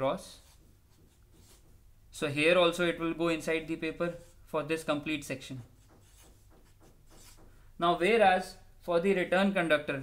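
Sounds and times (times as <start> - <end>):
marker pen scratching on paper: 0.3 - 1.8, 5.6 - 7.6
man speaking: 7.8 - 10.0.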